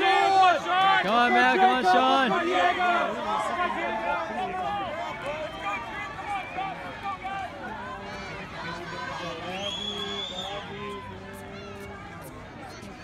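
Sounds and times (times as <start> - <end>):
crowd cheering and talking: 0.0 - 13.0.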